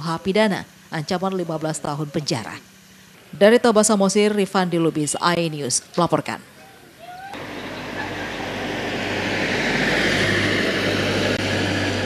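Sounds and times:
traffic rushing rumble: 0.0s - 12.0s
low hum: 7.4s - 12.0s.

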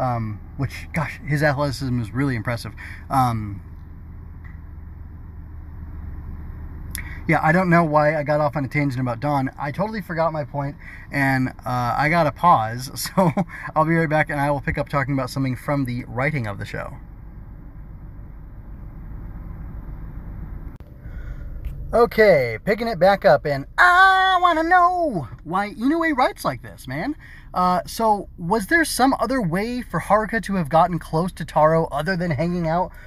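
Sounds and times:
low background hum: 0.0s - 33.0s
low rumbling background noise: 0.0s - 33.0s.

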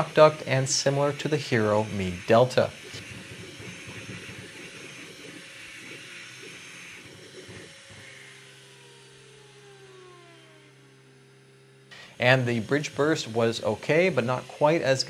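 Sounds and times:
cooling fan hissing: 0.0s - 15.0s
printer motor noise: 0.0s - 15.0s.

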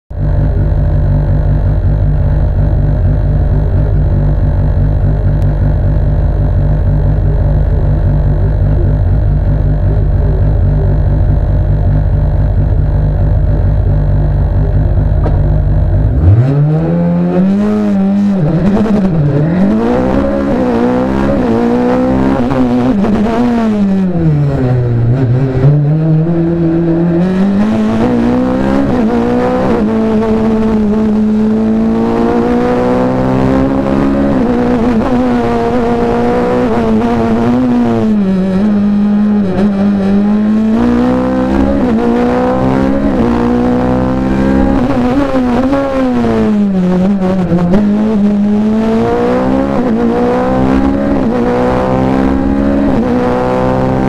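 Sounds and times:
racing car engine revving: 0.1s - 54.0s.

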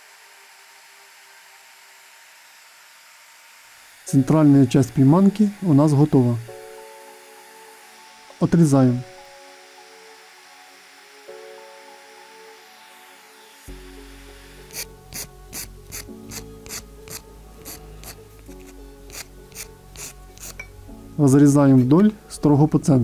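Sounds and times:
fret saw cutting wood: 0.0s - 20.7s
background music: 4.0s - 23.0s.

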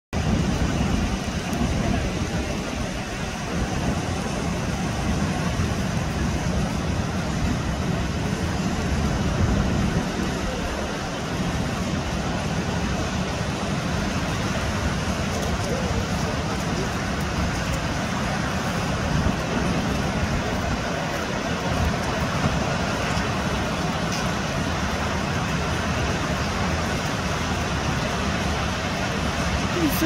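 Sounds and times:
surf breaking on rocky shore: 0.2s - 30.0s.

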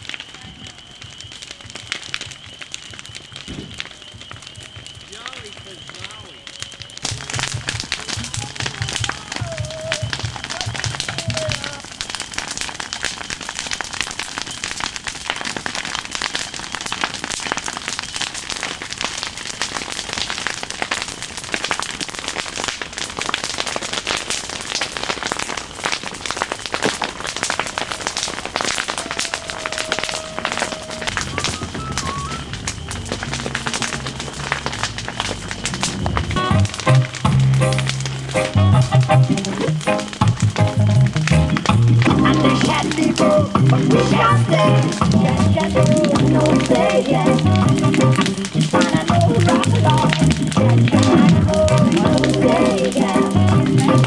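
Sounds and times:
bonfire crackling and popping: 0.0s - 54.0s
music with stepped bass line: 35.8s - 54.0s.

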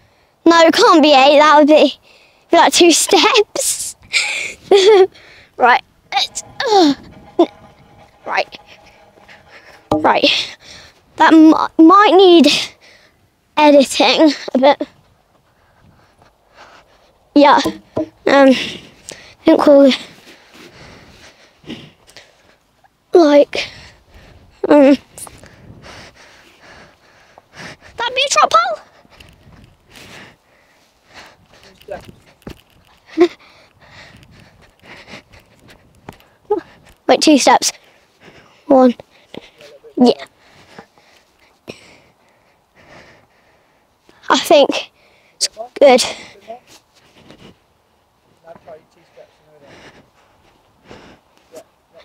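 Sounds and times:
girl speaking: 0.5s - 3.9s, 5.6s - 7.0s, 11.2s - 12.7s, 13.6s - 14.9s, 17.4s - 18.6s, 19.5s - 20.0s, 23.2s - 23.6s, 28.0s - 28.9s, 36.5s - 37.7s, 38.7s - 39.0s, 40.0s - 40.2s, 44.3s - 44.9s, 45.6s - 46.2s.

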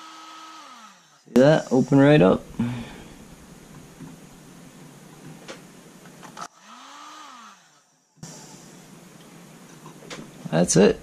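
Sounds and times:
heat gun blowing: 0.0s - 1.2s.

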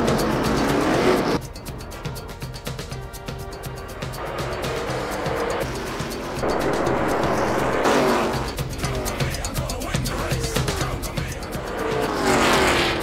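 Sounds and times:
race cars passing at speed: 0.0s - 1.4s, 3.9s - 8.9s, 11.5s - 13.0s
background music with beat: 0.0s - 13.0s.

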